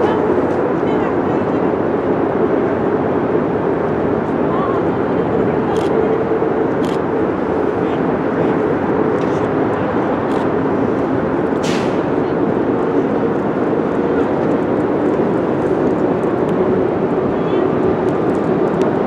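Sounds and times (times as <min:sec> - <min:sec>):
train rolling across bridge: 0:00.0 - 0:19.0.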